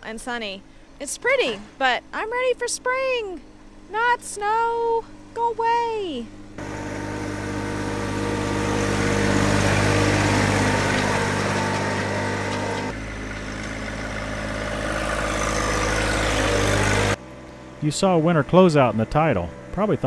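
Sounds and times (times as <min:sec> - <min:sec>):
tractor diesel engine running: 0:06.6 - 0:20.0.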